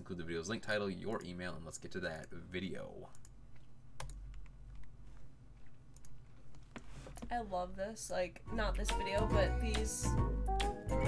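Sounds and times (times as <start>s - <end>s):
computer mouse clicks: 3.1s - 5.0s, 5.6s - 7.3s.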